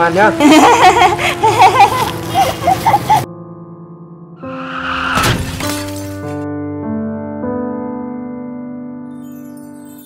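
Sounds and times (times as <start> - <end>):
sustained chord music: 0.0 - 4.6
crash sound effect: 4.4 - 6.4.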